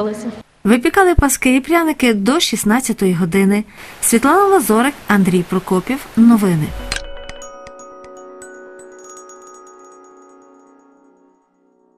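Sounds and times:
bell-like music jingle: 0:06.7 - 0:11.9.

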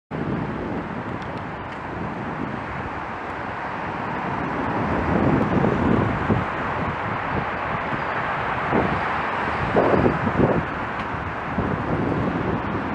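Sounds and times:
wind buffeting microphone: 0:00.1 - 0:12.9.

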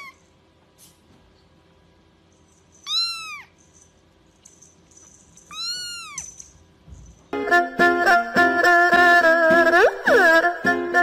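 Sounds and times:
kitten meowing: 0:02.8 - 0:03.5, 0:05.5 - 0:06.3.

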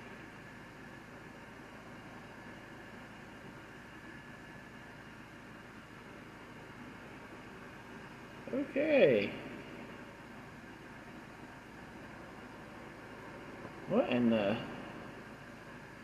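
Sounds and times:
faint low hum: 0:00.0 - 0:16.0
low background hiss: 0:00.0 - 0:16.0.

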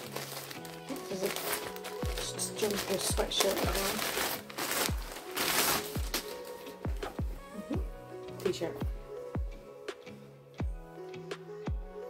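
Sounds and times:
plastic garment bag crinkling: 0:00.0 - 0:07.2
background music with kick drum: 0:00.0 - 0:12.0.

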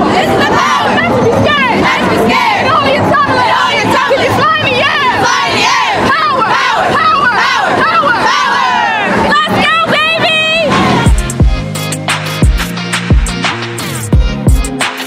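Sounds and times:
group screaming and shouting: 0:00.0 - 0:11.4.

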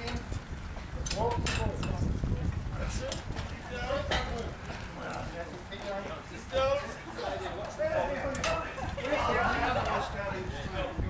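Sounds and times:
continuous low rumble: 0:00.0 - 0:11.0
work crew calling out: 0:00.9 - 0:11.0.

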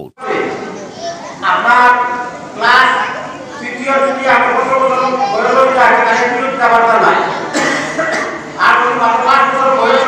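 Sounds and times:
man speaking into a microphone: 0:00.0 - 0:00.6, 0:01.4 - 0:10.0.

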